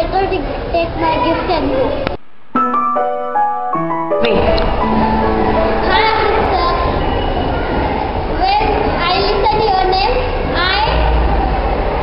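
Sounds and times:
children's voices: 0.0s - 2.2s, 4.2s - 12.0s
steady low rumble: 4.2s - 8.6s.

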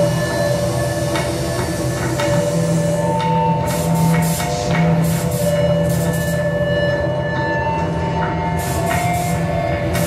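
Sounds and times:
electronic drone music: 0.0s - 10.0s.

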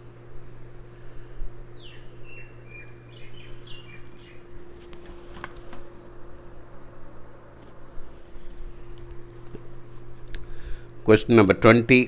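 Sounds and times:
steady low hum: 0.0s - 12.0s
bird chirping: 1.7s - 4.5s.

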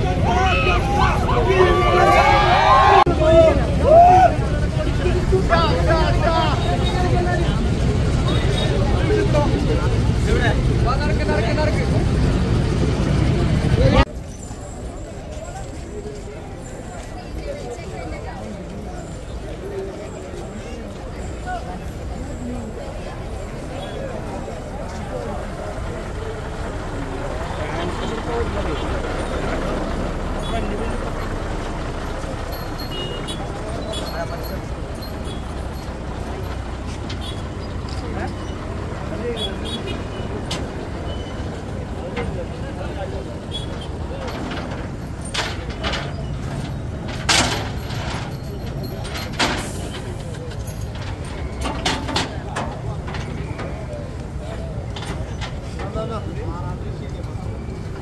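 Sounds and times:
lorry engine running: 0.0s - 14.1s, 21.8s - 56.0s
crowd chatter: 0.0s - 58.0s.

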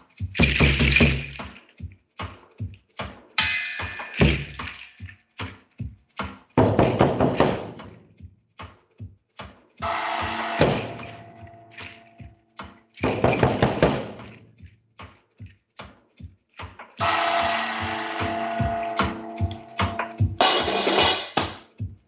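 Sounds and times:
seed-pod rattles shaken: 0.0s - 3.4s, 4.1s - 6.8s, 11.5s - 17.0s.

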